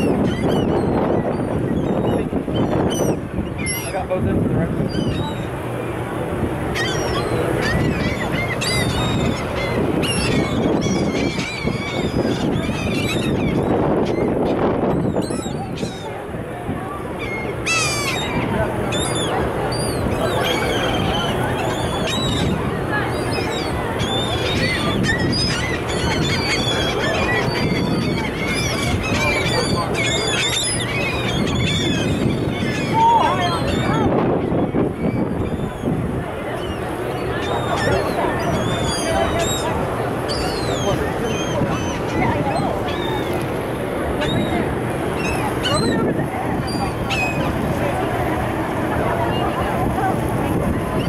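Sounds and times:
gulls calling: 0:00.0 - 0:51.0
low wind noise: 0:00.0 - 0:51.0.

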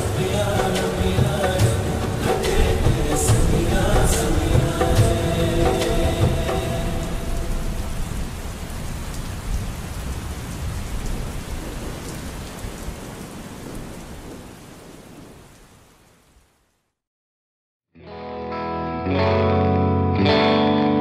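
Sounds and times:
song ending: 0:00.0 - 0:07.8, 0:18.0 - 0:21.0
steady rain: 0:00.0 - 0:17.0
low thunder rumble: 0:00.9 - 0:15.3.

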